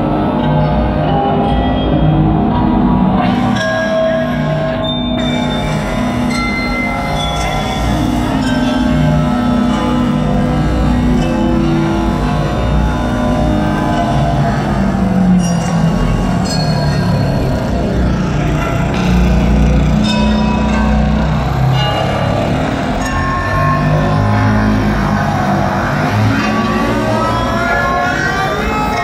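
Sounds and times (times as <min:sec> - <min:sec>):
bell-like ringing tones: 0:00.0 - 0:29.0
low drone: 0:00.0 - 0:29.0.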